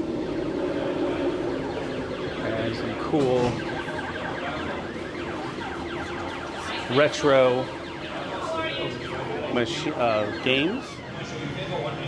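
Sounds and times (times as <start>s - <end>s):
electronic hum of low tones: 0.0s - 12.0s
sweeping electronic bleeps: 0.0s - 12.0s.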